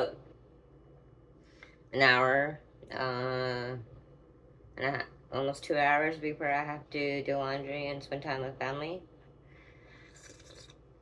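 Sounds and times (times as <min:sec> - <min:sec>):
quiet room hum: 0:00.0 - 0:11.0
sip of coffee: 0:10.0 - 0:10.8.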